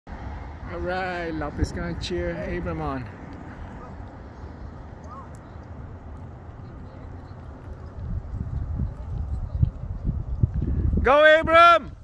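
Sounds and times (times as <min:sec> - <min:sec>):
low outdoor rumble: 0:00.1 - 0:12.0.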